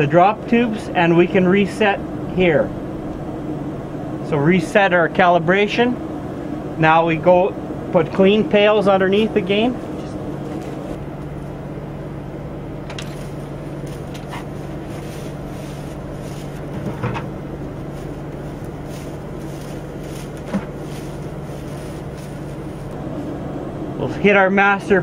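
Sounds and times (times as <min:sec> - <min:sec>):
machinery humming: 0:00.0 - 0:25.0.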